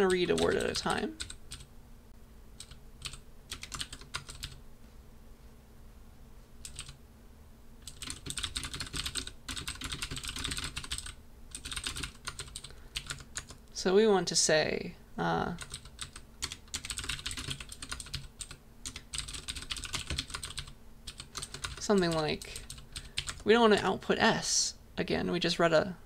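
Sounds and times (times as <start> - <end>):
typing on computer keyboard: 0.0 - 1.7, 2.6 - 4.6, 6.6 - 7.0, 7.8 - 13.6, 15.6 - 23.4.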